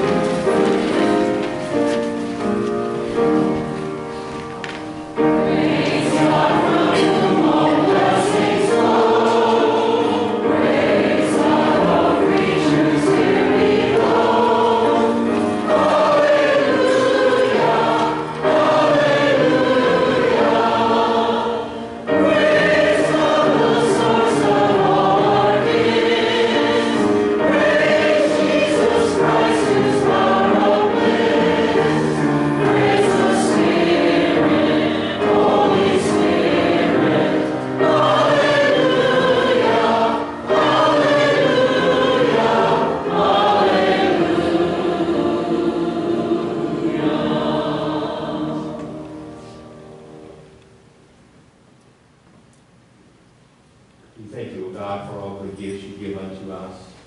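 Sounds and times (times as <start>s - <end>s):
congregation singing a hymn: 0.0s - 50.6s.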